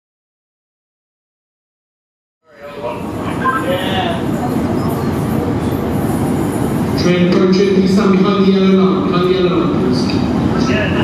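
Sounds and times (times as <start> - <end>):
diesel train rumbling: 2.5 - 11.0.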